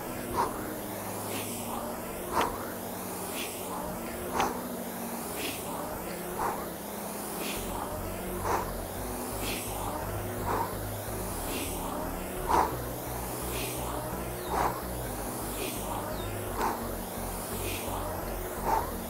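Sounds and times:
rowing machine fan whoosh: 0.0s - 19.0s.

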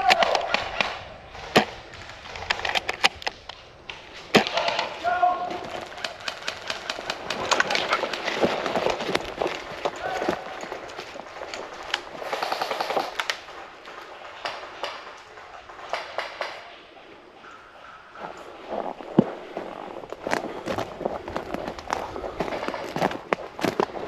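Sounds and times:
footsteps crunching on twigs: 1.3s - 14.0s, 18.2s - 24.0s
person calling out: 4.9s - 5.7s.

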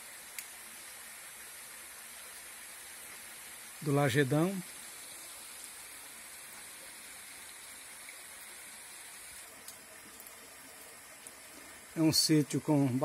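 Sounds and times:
stream water rushing over rock: 0.0s - 13.0s.

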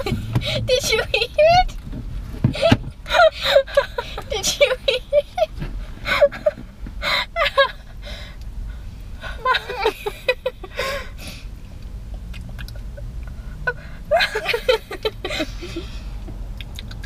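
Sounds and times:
women laughing: 2.6s - 5.5s, 7.3s - 7.8s, 9.3s - 11.1s, 14.1s - 15.9s.

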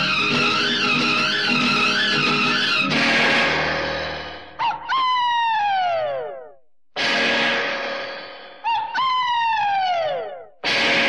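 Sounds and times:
band music: 0.0s - 4.6s.

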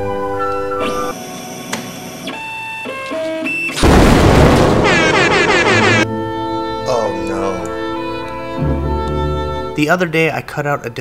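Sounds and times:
sudden loud burst: 3.8s - 6.0s.

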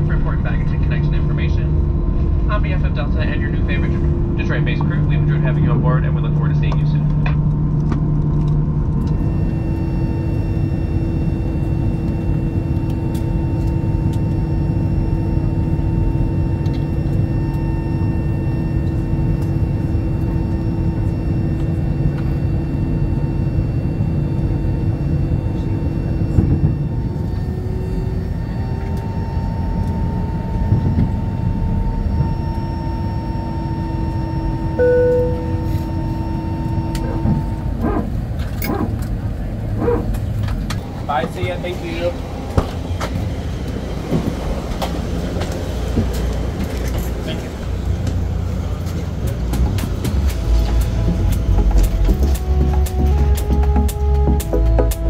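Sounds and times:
air-conditioning: 0.0s - 55.0s
idling jet engines rumble: 0.0s - 55.0s
steady hum tones: 0.0s - 55.0s
brief tone: 9.0s - 37.9s.

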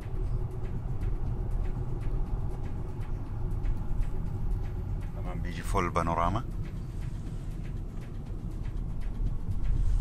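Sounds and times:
engine and tyre rumble in car: 0.0s - 10.0s.

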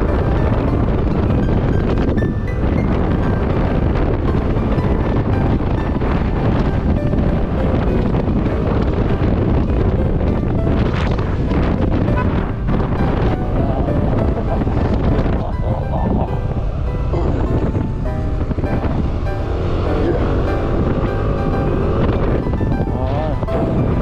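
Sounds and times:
background music: 0.0s - 24.0s
wind buffeting microphone: 0.0s - 24.0s.

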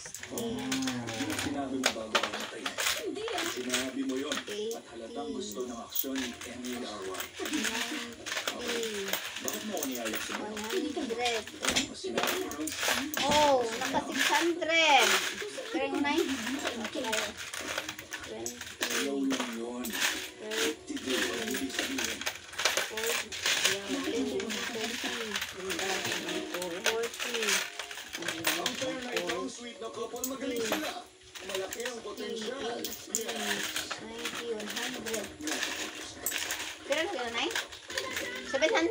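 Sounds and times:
coins clinking and rattling: 0.0s - 38.9s.

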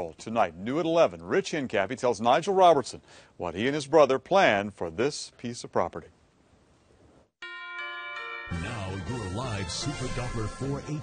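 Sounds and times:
news music sting: 8.2s - 11.0s.

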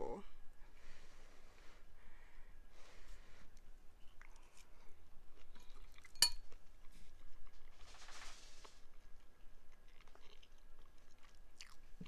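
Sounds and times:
fork clinking against ceramic bowl: 6.1s - 6.4s.

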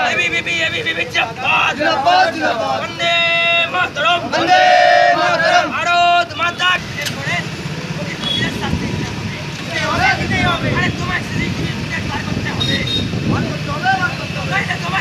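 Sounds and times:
motorcycle and car engines rumbling: 0.0s - 15.0s
people talking in street: 0.0s - 15.0s.

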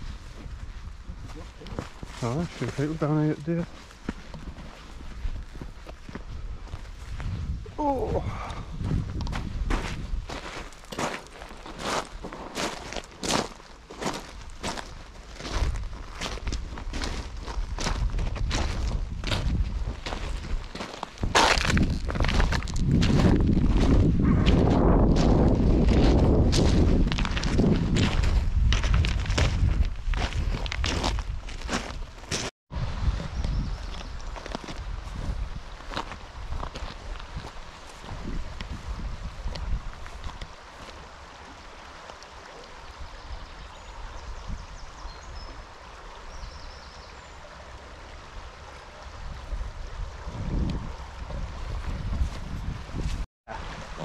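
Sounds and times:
footsteps crunching on pebbles: 0.0s - 7.6s, 8.7s - 32.5s, 34.0s - 41.2s.

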